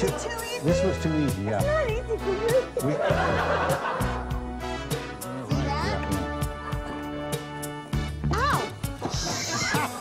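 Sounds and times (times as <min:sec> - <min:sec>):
background music with steady beat: 0:00.0 - 0:10.0
laughter: 0:02.4 - 0:04.4, 0:09.2 - 0:10.0.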